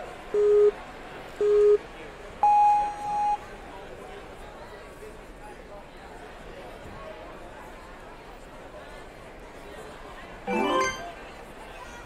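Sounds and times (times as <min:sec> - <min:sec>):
short low beep: 0:02.4 - 0:03.4
high-pitched start tone: 0:10.5 - 0:11.2.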